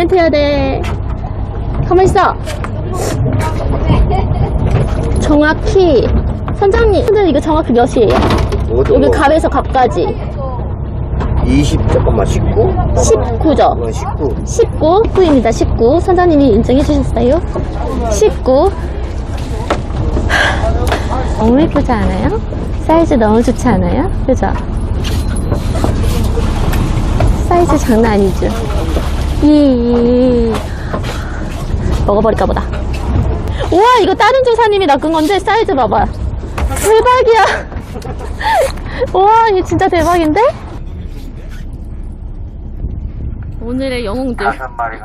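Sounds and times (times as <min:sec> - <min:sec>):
boat engine rumbling: 0:00.0 - 0:45.0.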